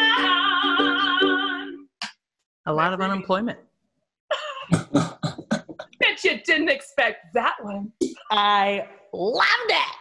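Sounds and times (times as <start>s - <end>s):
person singing with ukulele: 0.0s - 1.9s.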